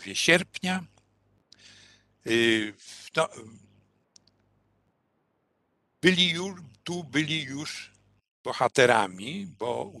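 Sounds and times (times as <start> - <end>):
faint short clicks: 4.1 - 4.5.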